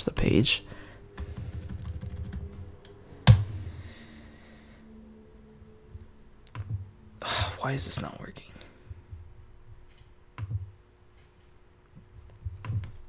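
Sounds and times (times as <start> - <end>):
computer keyboard clicks: 1.2 - 2.6.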